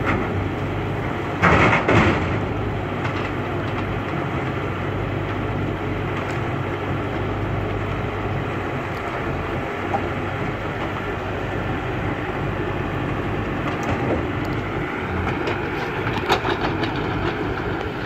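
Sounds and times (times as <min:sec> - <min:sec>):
diesel engines running: 0:00.0 - 0:18.0
sharp knocks and clatters: 0:01.4 - 0:02.4, 0:13.7 - 0:18.0.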